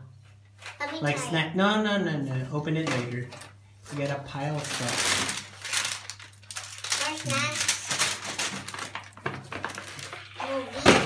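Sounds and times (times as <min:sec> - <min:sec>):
plastic packages crinkling: 0:03.9 - 0:10.3.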